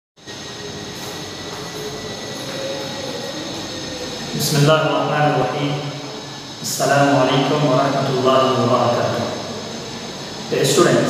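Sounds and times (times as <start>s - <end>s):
room hum and hiss: 0.2s - 11.0s
faint high-pitched tones: 0.5s - 8.0s.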